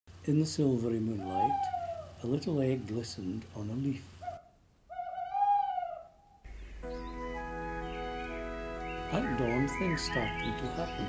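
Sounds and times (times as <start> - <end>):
owl hooting: 1.0 - 3.2, 4.1 - 11.0
gentle music with held notes: 6.5 - 11.0.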